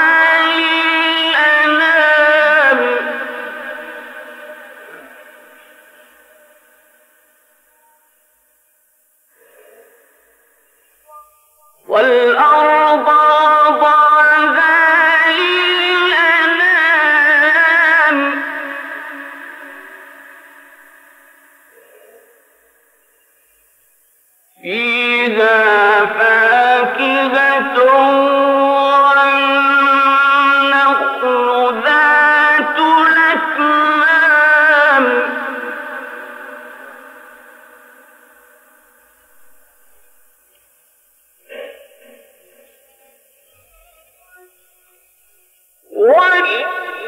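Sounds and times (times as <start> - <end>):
man chanting melodic recitation: 0.0 - 7.0, 11.0 - 21.0, 24.6 - 38.5, 43.8 - 47.0
voice echo: 0.0 - 8.6, 9.2 - 23.0, 24.5 - 40.7, 41.4 - 47.0.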